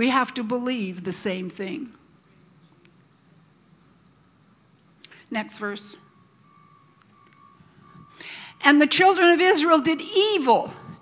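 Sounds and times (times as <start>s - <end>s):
faint high-pitched tone: 5.3s - 11.0s.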